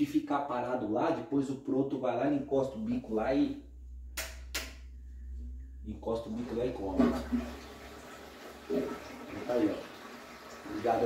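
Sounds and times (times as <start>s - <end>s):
low hum: 2.1s - 7.9s
sharp clicks: 4.2s - 4.8s.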